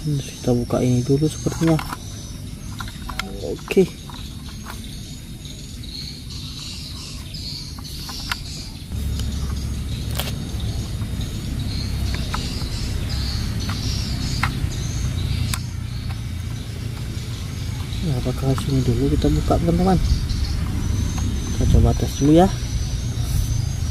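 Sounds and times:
faint bird chirps: 0.0 - 23.9
plastic toy clicks: 1.4 - 2.0
low rumble: 8.9 - 23.9.

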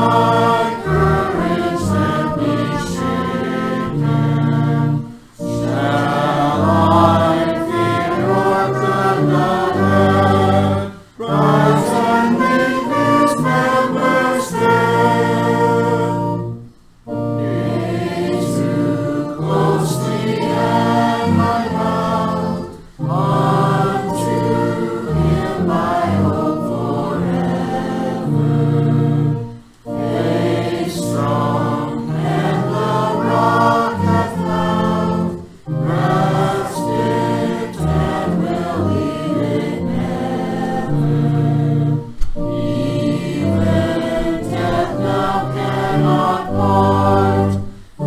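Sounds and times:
congregation singing a hymn: 0.0 - 48.0
held instrumental chords: 0.0 - 48.0.

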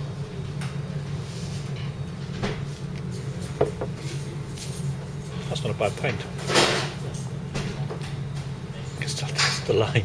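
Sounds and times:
low background hum: 0.0 - 10.0
glass knocking on wooden table: 3.6 - 4.0.

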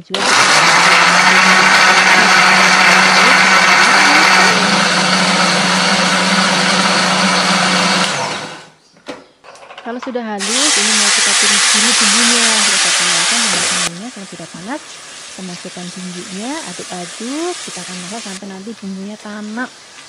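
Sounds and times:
blender running: 0.0 - 8.7, 10.4 - 18.4.

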